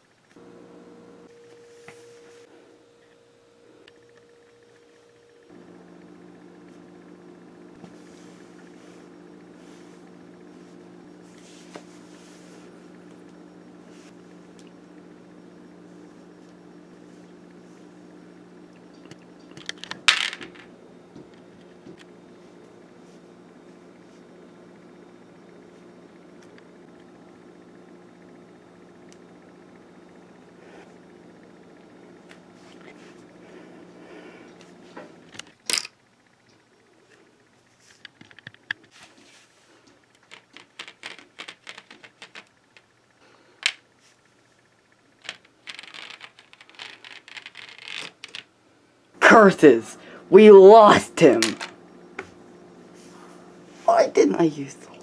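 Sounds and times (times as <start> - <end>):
small hard objects clattering: 45.2 - 48.4.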